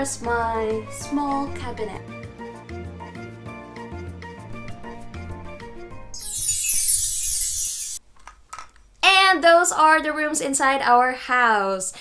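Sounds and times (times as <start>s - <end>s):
high shimmering whoosh: 4.4s - 8.0s.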